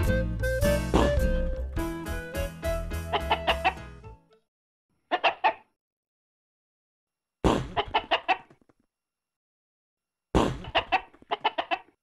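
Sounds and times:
music track: 0.0 - 4.4
chicken clucking: 3.1 - 3.8, 5.1 - 5.7, 7.7 - 8.7, 10.6 - 12.0.

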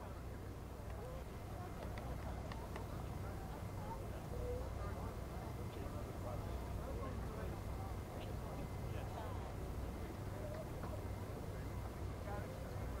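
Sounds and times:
faint chatter of voices: 0.0 - 13.0.

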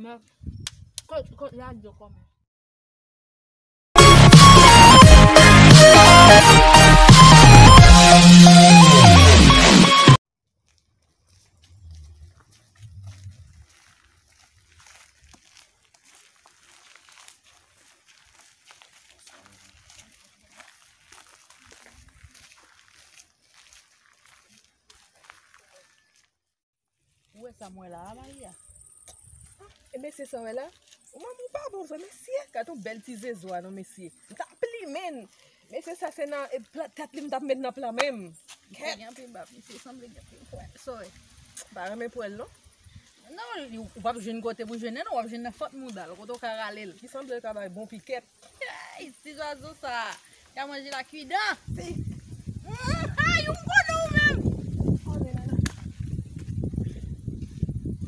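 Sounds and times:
footsteps on stony dirt road: 10.5 - 58.0
low muffled rumbles: 11.6 - 13.8.

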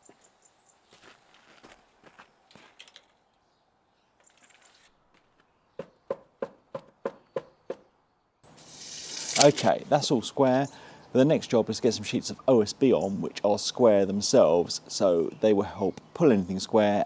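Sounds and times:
footsteps on gravel: 0.0 - 3.2
tape measure rustling and clicking: 4.2 - 5.0, 8.5 - 9.9.

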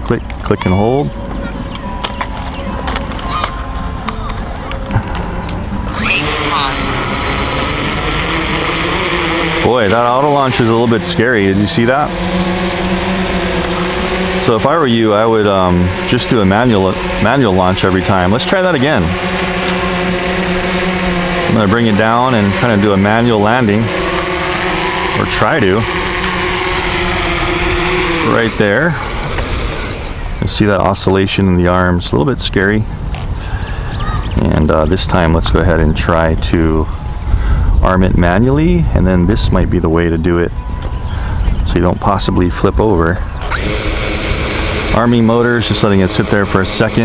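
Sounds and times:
motor rising whine: 0.0 - 31.3, 38.3 - 47.0
quadcopter hovering hum: 0.0 - 32.0, 32.8 - 47.0.

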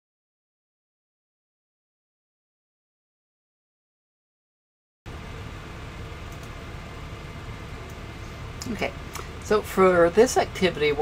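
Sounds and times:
low hum: 5.1 - 11.0.

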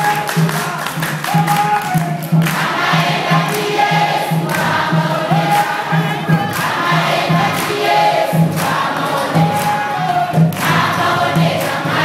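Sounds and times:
congregation singing: 0.0 - 12.0
steady low beat: 0.4 - 12.0.

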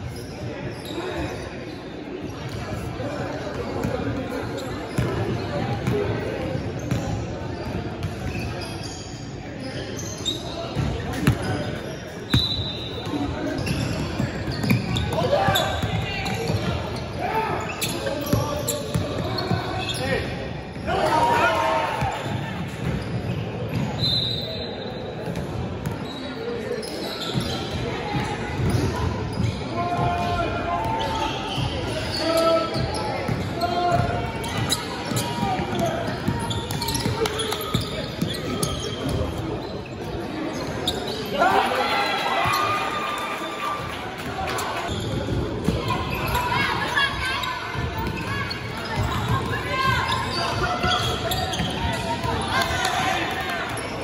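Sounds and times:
basketball bouncing on court: 4.9 - 8.3, 13.0 - 17.1, 32.8 - 39.4.

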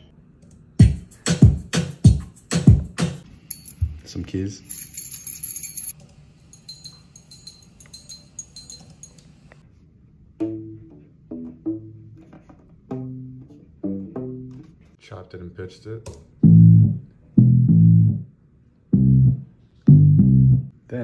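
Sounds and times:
keys jingling: 3.4 - 9.6
ukulele bass plucked notes: 12.9 - 14.8, 16.4 - 18.3, 19.0 - 20.7.

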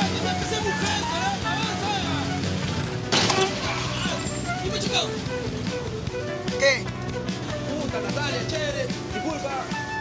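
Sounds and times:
background music: 0.0 - 10.0
street traffic: 0.0 - 10.0.

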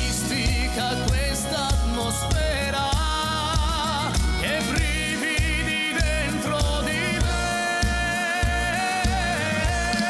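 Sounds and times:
band with steady drum beat: 0.0 - 10.0.

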